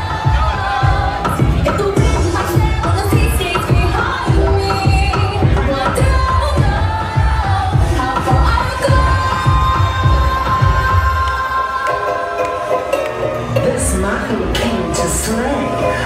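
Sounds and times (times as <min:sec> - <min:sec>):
pop music with vocals: 0:00.0 - 0:16.0.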